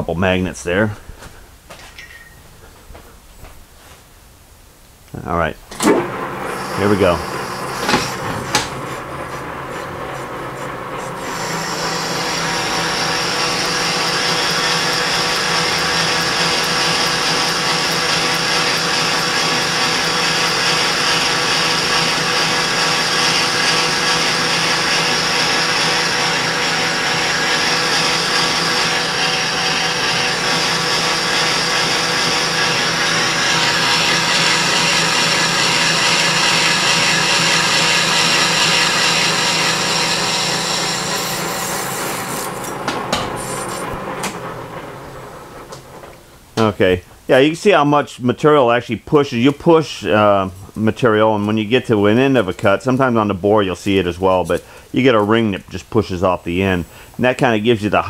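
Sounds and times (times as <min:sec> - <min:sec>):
metal lathe cutting: 0:05.8 - 0:46.2.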